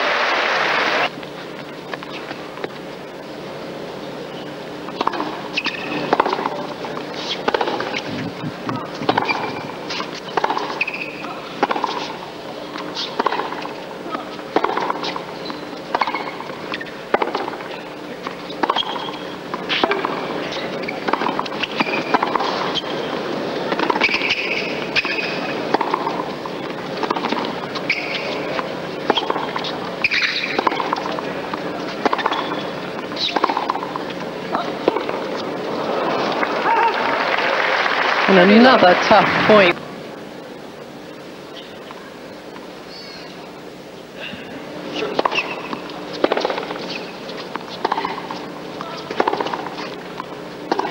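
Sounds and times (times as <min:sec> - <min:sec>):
arena hum: 0:00.0 - 0:50.9
racquets hitting tennis ball: 0:08.7 - 0:13.8, 0:14.5 - 0:23.0, 0:23.7 - 0:35.5, 0:45.0 - 0:50.9.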